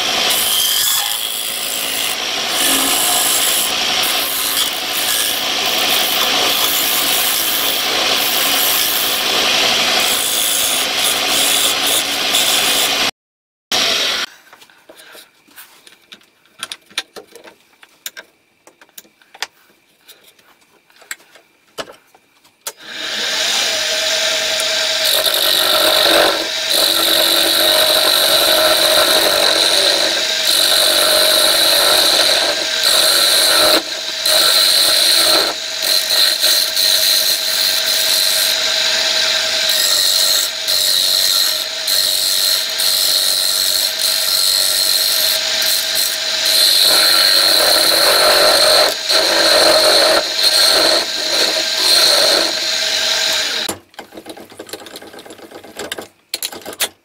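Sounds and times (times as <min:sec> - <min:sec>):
lathe tool cutting wood: 0:00.0 - 0:13.1, 0:13.8 - 0:14.3, 0:22.8 - 0:53.7
lathe humming: 0:22.9 - 0:53.7.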